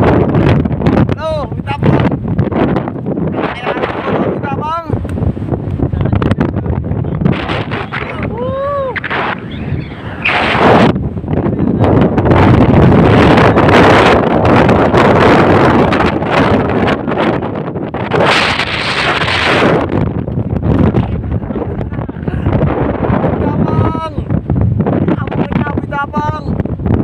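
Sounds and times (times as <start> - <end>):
wind buffeting microphone: 0.0 - 27.0.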